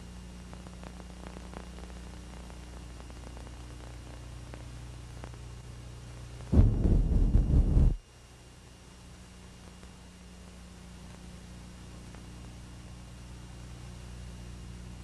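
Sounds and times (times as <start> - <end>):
faint crackles: 0.0 - 7.9, 8.6 - 15.0
low hum: 4.5 - 8.0
loud deep rumble: 6.6 - 8.0.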